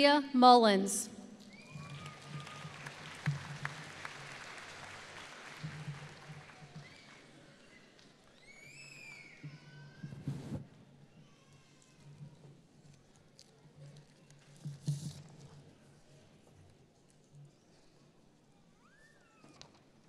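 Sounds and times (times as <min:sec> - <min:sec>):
cheering whoops: 0:01.5 - 0:03.1, 0:06.3 - 0:07.3, 0:08.4 - 0:10.0
audience applause: 0:01.5 - 0:07.4.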